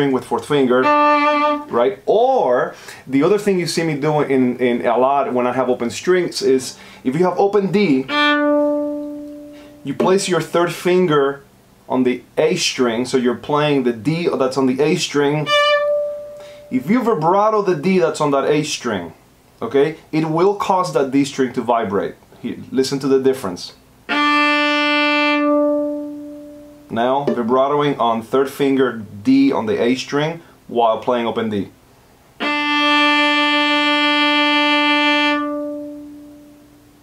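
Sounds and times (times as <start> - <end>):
violin string bowed: 0.0 - 2.4, 5.1 - 10.8, 14.8 - 17.2, 24.1 - 27.6, 32.4 - 36.8.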